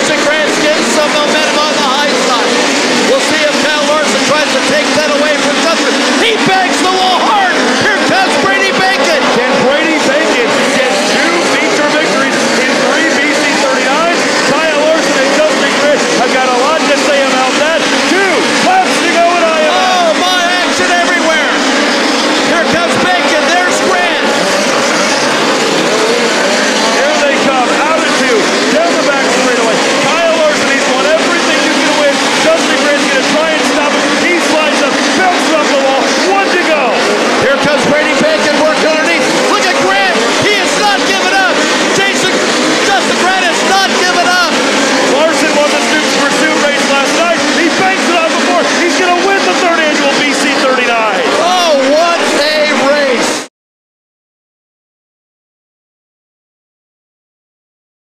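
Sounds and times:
race car engines revving: 0:00.0 - 0:53.5.

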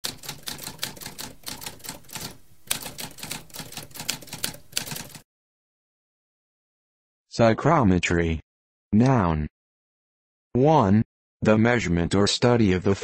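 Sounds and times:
typewriter keys typing: 0:00.0 - 0:05.2.

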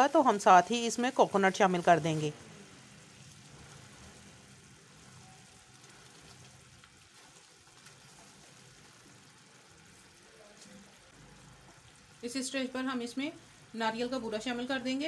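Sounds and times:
syrup bubbling in pan: 0:00.1 - 0:14.8.

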